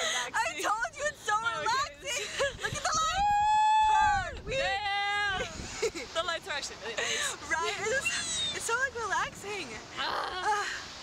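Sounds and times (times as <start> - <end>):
women squealing and laughing: 0.0 - 6.2, 7.0 - 8.8, 10.0 - 10.9.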